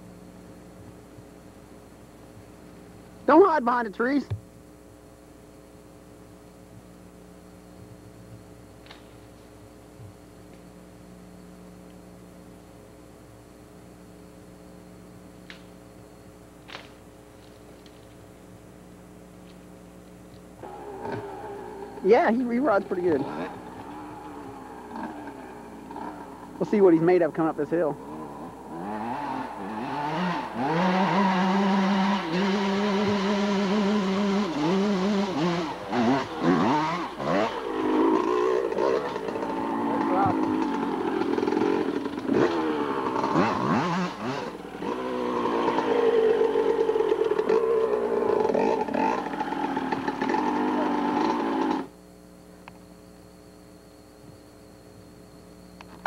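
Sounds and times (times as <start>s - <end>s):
faint steady hum: 0.0s - 56.0s
dirt bike engine revving: 20.6s - 52.0s.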